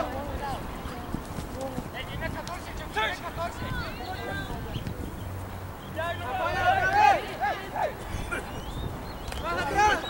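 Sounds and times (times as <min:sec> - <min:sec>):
wind rumble on microphone: 0:00.0 - 0:05.8, 0:08.0 - 0:10.0
distant players shouting: 0:06.0 - 0:10.0.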